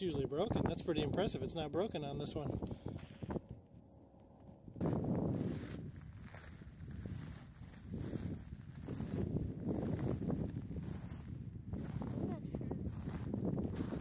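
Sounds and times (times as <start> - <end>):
footsteps crunching on gravel: 2.9 - 14.0.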